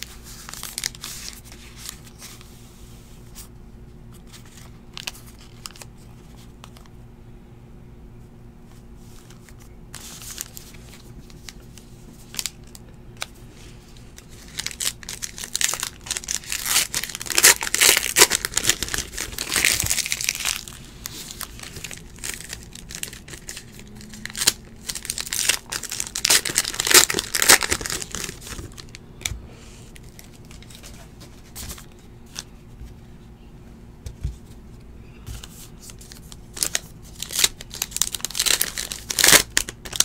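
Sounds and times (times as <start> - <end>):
packaging crinkling and tearing: 0.0 - 2.4, 4.2 - 6.9, 9.2 - 13.3, 14.1 - 29.3, 29.9 - 32.5, 35.4 - 40.0.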